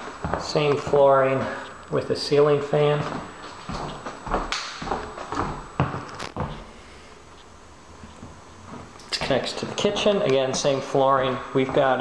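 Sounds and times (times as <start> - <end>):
footsteps on laminate floor: 0.0 - 1.6, 2.8 - 6.7, 7.4 - 12.0.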